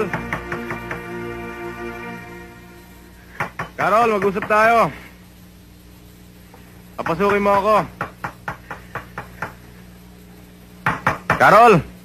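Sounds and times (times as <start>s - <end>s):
knocking on a door: 3.4s - 4.6s, 10.8s - 11.5s.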